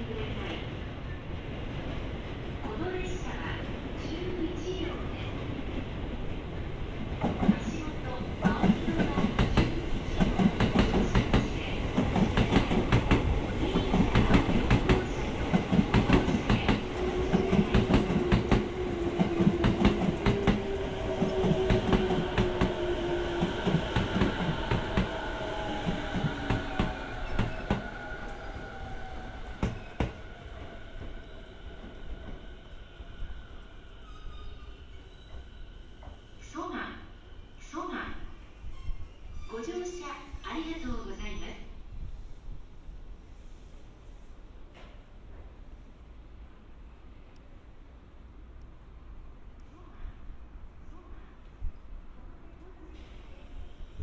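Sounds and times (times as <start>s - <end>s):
train braking: 7.5s - 41.5s.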